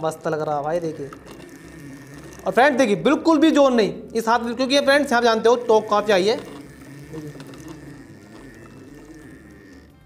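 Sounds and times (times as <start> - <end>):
winding machine running: 0.0 - 10.0.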